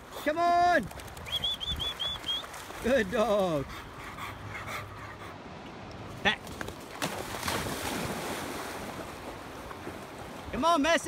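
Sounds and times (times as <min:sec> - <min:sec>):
faint outdoor noise: 0:00.0 - 0:11.0
dog panting softly: 0:03.5 - 0:05.4.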